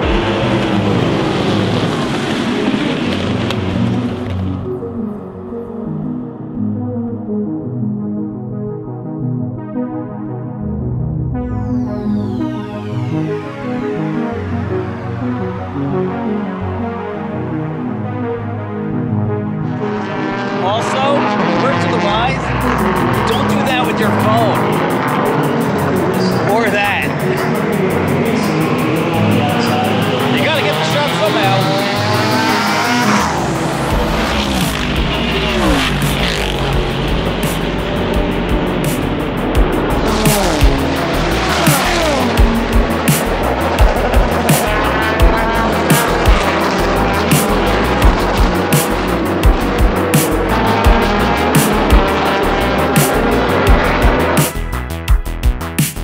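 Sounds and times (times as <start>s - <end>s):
race cars passing: 0.0s - 6.4s, 12.0s - 54.7s
background music with steady beat: 22.4s - 56.0s.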